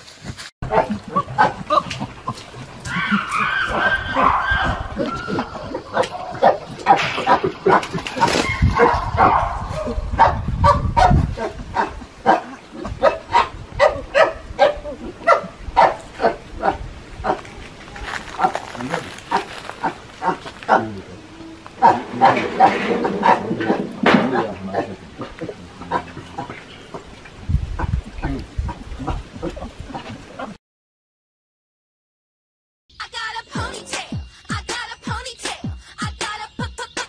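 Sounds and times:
chimpanzees calling: 0.7s - 10.0s, 18.3s - 27.2s.

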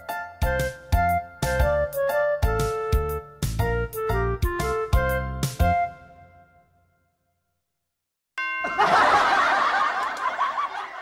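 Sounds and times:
ringing chime note: 8.4s - 9.4s
canned laughter: 8.7s - 11.0s.

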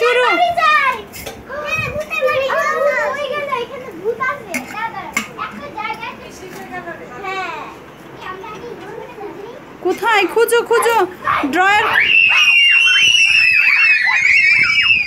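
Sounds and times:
children talking and calling out: 0.0s - 15.0s.

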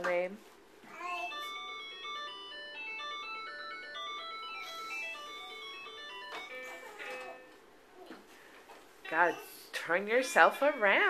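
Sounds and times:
electronic toy playing tinny tune: 1.0s - 7.6s.

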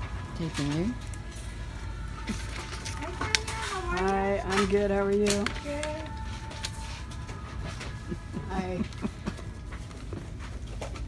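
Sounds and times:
faint music playing: 0.0s - 11.0s
low din of shop: 0.0s - 11.0s.

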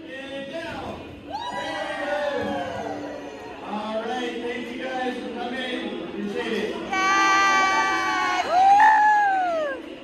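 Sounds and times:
crowd cheering: 1.3s - 3.6s, 7.0s - 10.0s.

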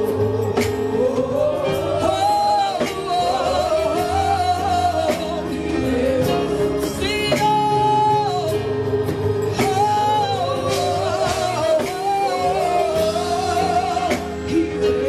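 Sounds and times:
gospel choir singing: 0.0s - 15.0s
live band with drums: 0.0s - 15.0s.

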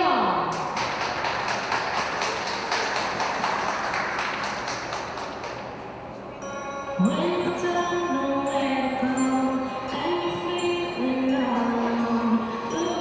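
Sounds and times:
audience applauding: 0.5s - 5.8s.

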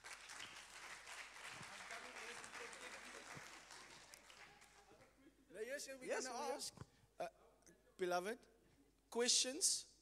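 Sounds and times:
congregation clapping: 0.0s - 5.0s.

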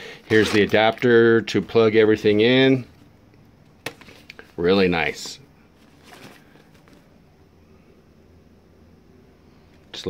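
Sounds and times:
low room hum: 0.0s - 10.0s
cables rustling and clicking: 0.2s - 1.3s, 5.2s - 7.2s.

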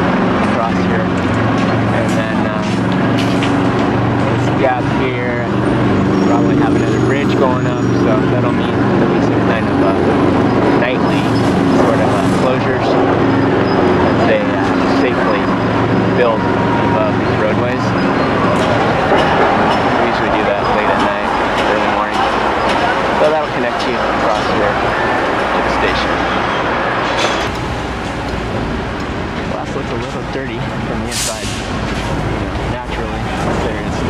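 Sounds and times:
indistinct voices: 0.0s - 34.0s
vehicle engines running: 0.0s - 34.0s.

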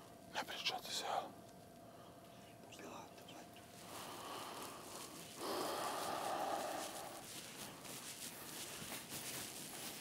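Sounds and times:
room hiss: 0.0s - 10.0s
bedding rustling: 4.5s - 10.0s.

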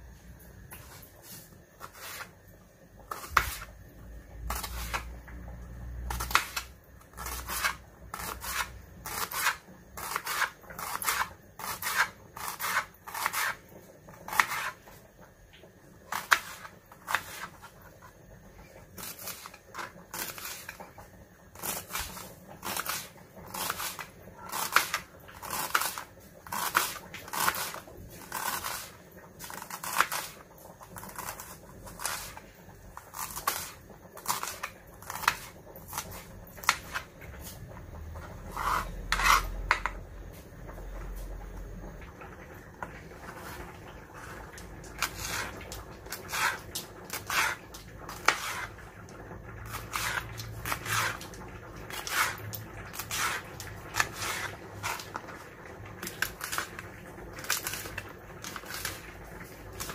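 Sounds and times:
knife chopping on cutting board: 3.1s - 3.7s, 4.5s - 5.2s, 6.1s - 13.6s, 14.3s - 14.8s, 38.5s - 40.0s, 46.1s - 48.7s, 49.7s - 51.2s, 51.9s - 55.2s.

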